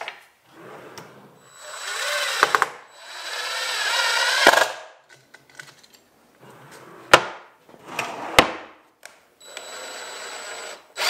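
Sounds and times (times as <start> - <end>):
drawer rolling on ball-bearing slides: 0.5 - 1.4, 6.4 - 8.7.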